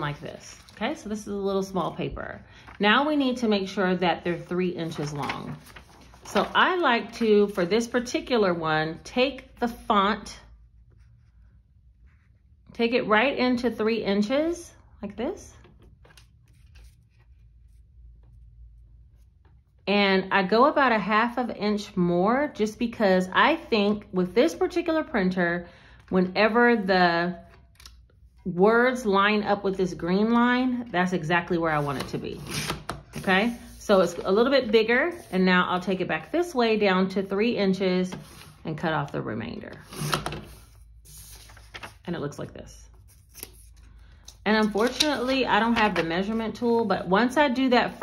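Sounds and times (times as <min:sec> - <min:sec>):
paper rustling and clicking: 0:04.8 - 0:06.8, 0:41.3 - 0:42.0, 0:43.1 - 0:46.4.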